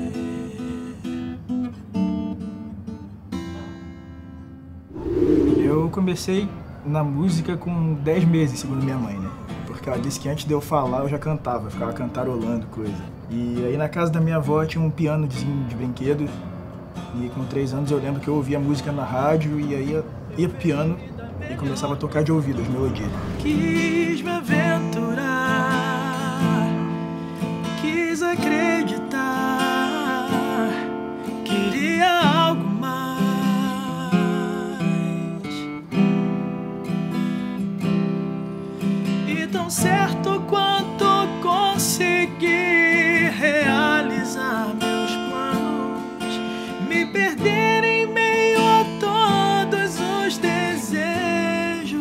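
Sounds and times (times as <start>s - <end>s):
man singing: 0.0s - 1.1s, 23.2s - 26.8s, 27.8s - 30.9s, 31.5s - 35.6s, 39.2s - 52.0s
acoustic guitar: 0.0s - 20.2s, 22.9s - 52.0s.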